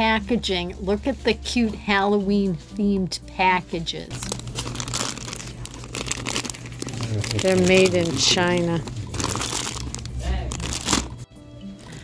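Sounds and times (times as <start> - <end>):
plastic packaging crinkling: 4.2 - 11.2.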